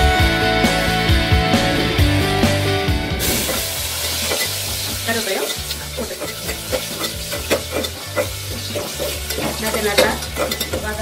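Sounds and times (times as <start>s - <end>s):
vegetables sizzling in hot oil: 3.2s - 11.0s
metal spatula scraping pot: 3.3s - 11.0s.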